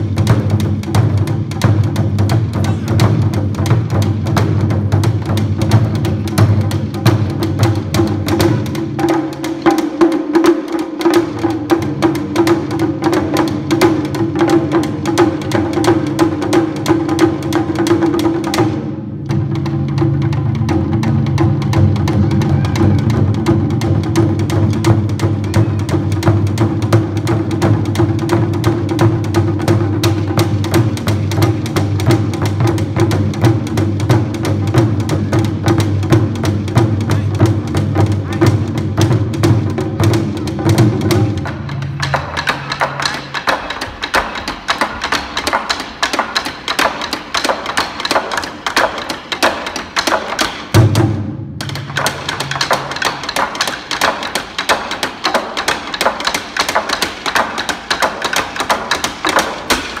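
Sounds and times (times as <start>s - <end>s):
drum ensemble playing fast rhythm: 0.0s - 60.0s.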